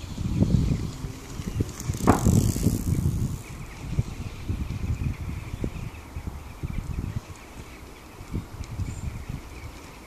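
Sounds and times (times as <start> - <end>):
bicycle tyre and drivetrain noise: 0.0 - 10.0
wind buffeting microphone: 0.0 - 10.0.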